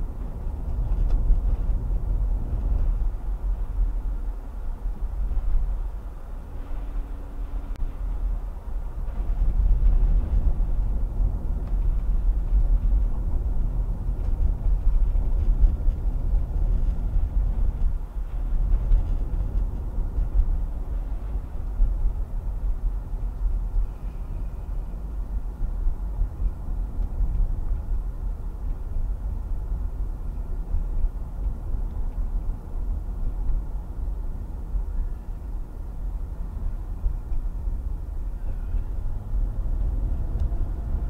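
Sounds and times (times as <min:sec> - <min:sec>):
car driving on paved road: 0:00.0 - 0:41.0.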